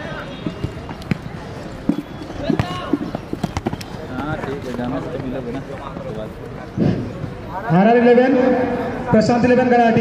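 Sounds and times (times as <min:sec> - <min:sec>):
football kicked and bouncing: 0:00.4 - 0:04.6.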